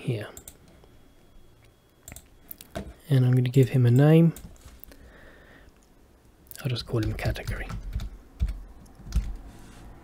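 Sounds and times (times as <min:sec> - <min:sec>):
computer keyboard typing: 0:02.0 - 0:02.9, 0:06.8 - 0:09.4.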